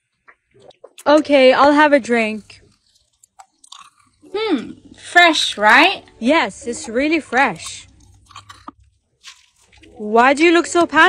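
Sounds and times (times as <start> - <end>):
crunching candy: 2.1 - 5.6, 6.8 - 10.0.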